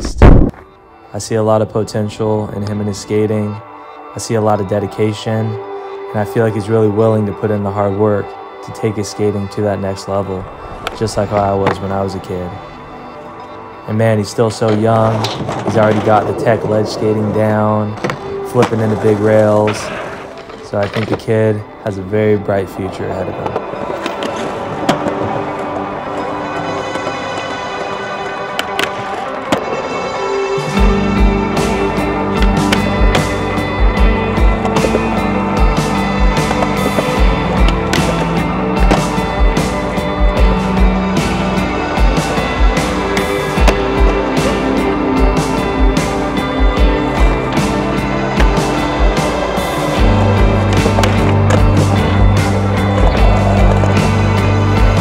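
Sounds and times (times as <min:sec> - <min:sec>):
music playing: 0:00.0 - 0:55.0
skateboard wheels rolling: 0:08.8 - 0:55.0
skateboard grinding: 0:10.4 - 0:21.8, 0:22.6 - 0:55.0
skateboard clacks: 0:14.6 - 0:21.3, 0:31.6 - 0:55.0
music with steady beat: 0:30.3 - 0:55.0.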